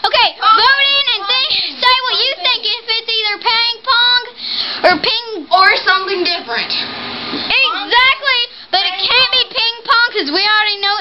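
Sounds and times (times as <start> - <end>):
girl singing: 7.5 - 11.0.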